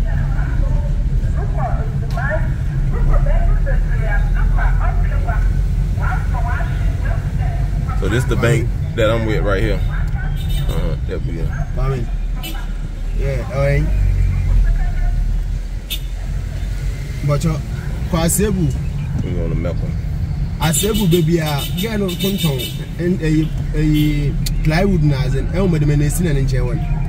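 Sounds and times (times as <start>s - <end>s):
car engine and road rumble: 0.0s - 27.0s
indistinct voices talking: 0.0s - 27.0s.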